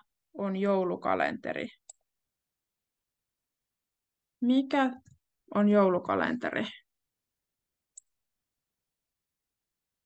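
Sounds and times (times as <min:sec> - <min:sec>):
computer mouse click: 0:01.8 - 0:02.1, 0:07.9 - 0:08.2.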